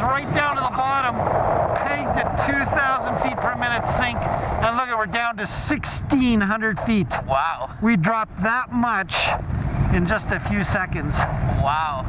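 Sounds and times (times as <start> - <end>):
man's voice: 0.0 - 12.0
wind rushing: 0.0 - 12.0.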